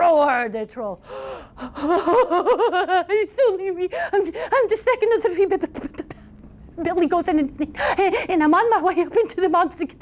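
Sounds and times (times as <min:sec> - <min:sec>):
woman gasping: 0:01.0 - 0:01.9.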